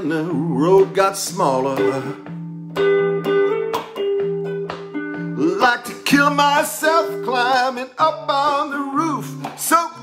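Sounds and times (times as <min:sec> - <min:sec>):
guitar chords: 0:00.0 - 0:10.0.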